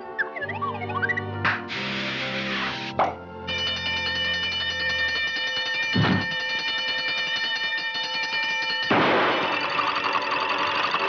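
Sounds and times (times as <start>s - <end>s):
cartoon orchestral music: 0.0s - 5.3s.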